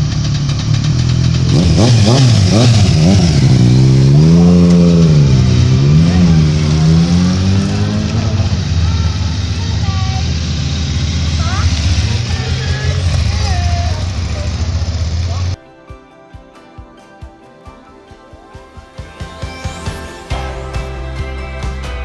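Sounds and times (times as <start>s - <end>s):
low engine hum: 0.0s - 15.6s
motorcycles pulling away: 0.0s - 15.6s
voices: 2.5s - 22.0s.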